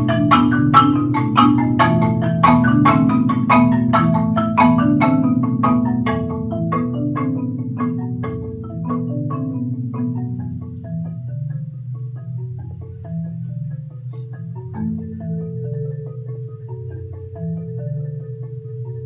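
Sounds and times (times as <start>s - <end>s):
marimba duet: 0.0s - 19.0s.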